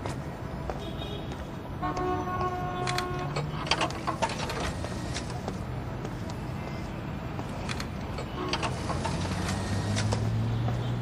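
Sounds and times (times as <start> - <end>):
low rumble of road traffic: 0.0 - 11.0.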